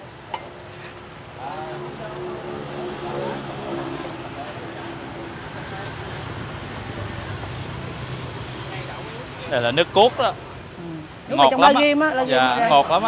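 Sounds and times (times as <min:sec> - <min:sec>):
street traffic: 0:00.0 - 0:13.0
faint voices: 0:01.3 - 0:13.0.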